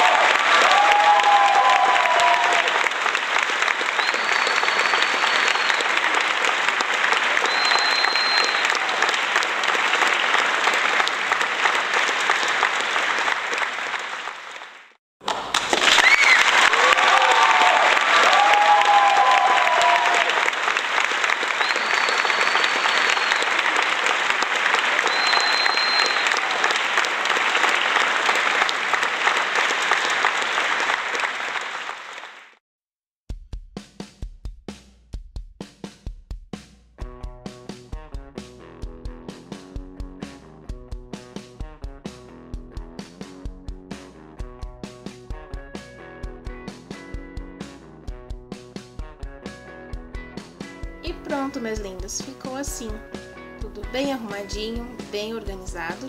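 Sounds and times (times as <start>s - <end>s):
applause: 0.0s - 32.6s, 51.1s - 53.2s, 53.9s - 56.0s
crowd cheering: 0.0s - 32.6s
whistles: 3.8s - 6.2s, 7.3s - 8.9s, 15.9s - 16.5s, 21.4s - 23.8s, 24.9s - 26.5s.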